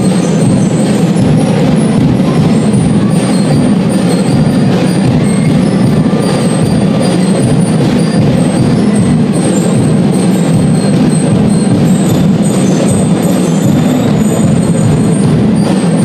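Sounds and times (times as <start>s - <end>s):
drums playing loudly: 0.0s - 16.0s
ringing bell-lyre notes: 0.0s - 16.0s.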